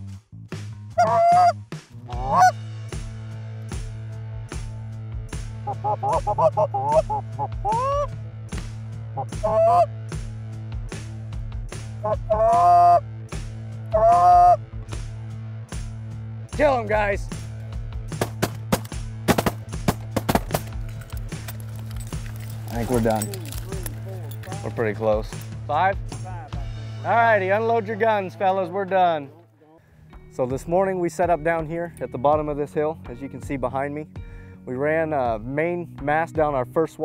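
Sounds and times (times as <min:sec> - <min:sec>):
background music with steady beat: 0:00.0 - 0:37.0
geese honking: 0:01.0 - 0:02.6, 0:05.7 - 0:08.1, 0:09.2 - 0:09.9, 0:12.0 - 0:13.0, 0:13.9 - 0:14.6
shotgun fire: 0:18.2 - 0:20.7.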